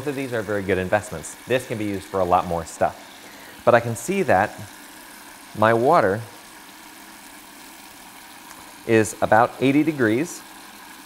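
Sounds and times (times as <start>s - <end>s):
tap water running into sink: 0.0s - 11.0s.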